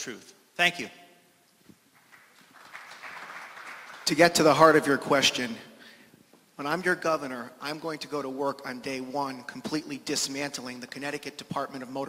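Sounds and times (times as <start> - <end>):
audience clapping: 1.9 - 4.7.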